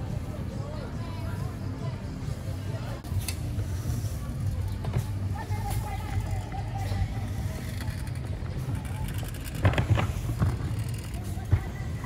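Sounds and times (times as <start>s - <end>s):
people's voices: 0.0s - 12.0s
traffic rumble: 0.0s - 12.0s.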